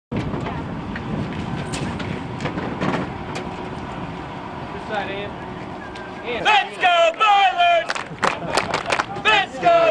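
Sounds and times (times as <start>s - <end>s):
bus engine idling: 0.1s - 9.9s.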